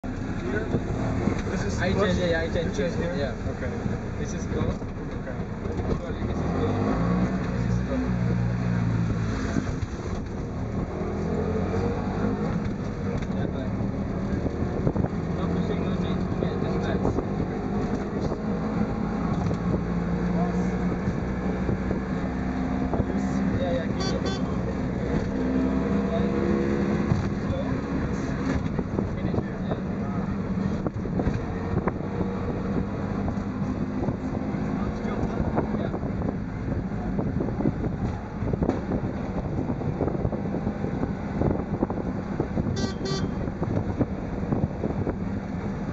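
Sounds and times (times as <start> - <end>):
auto rickshaw engine running: 0.0 - 45.9
rough road noise: 0.0 - 45.9
wind noise: 35.3 - 45.9.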